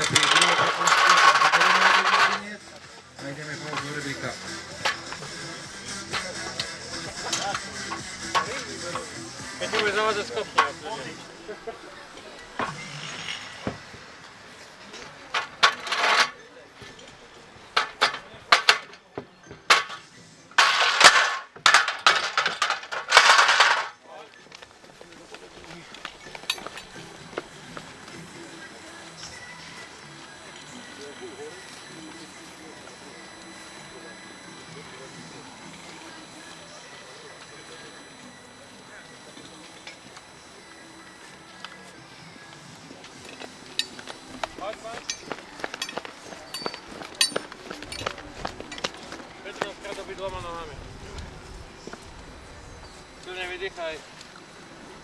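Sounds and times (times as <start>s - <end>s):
boots and gear clanking on ladder: 20.6s - 28.0s, 42.9s - 50.2s.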